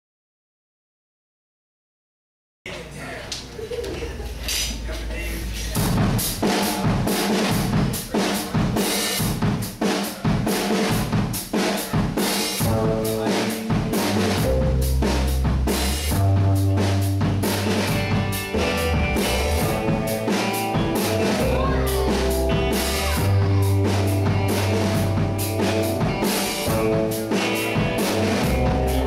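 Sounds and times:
drum kit beat: 4.4 - 29.0
electric bass: 12.6 - 29.0
electric guitar: 12.6 - 29.0.

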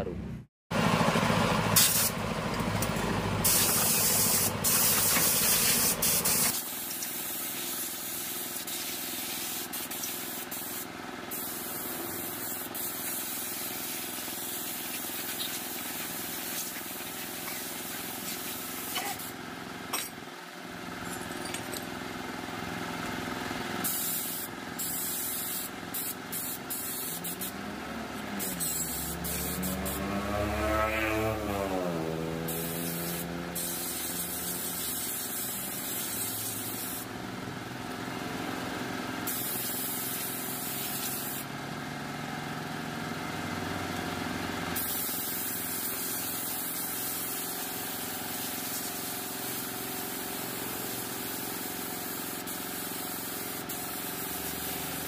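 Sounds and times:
compressed-air blow gun hissing: 1.8 - 2.2, 3.4 - 19.3, 32.8 - 37.1, 44.8 - 55.0
engine revving: 27.1 - 36.7.

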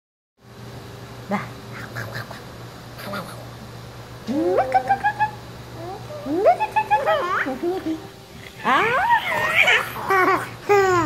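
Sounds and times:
steady low hum: 0.4 - 11.0
baby girl laughing: 8.8 - 11.0.

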